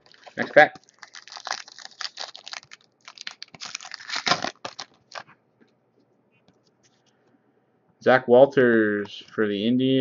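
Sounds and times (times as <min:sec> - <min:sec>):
foil wrapper crinkling and tearing: 0:00.0 - 0:05.2.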